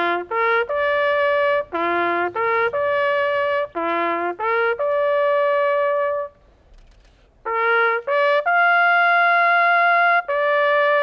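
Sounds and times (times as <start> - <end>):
solo trumpet call: 0.0 - 6.6, 7.4 - 11.0.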